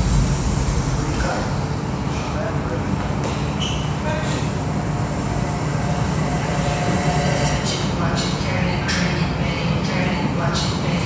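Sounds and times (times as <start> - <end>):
low rumbling room noise: 0.0 - 11.0.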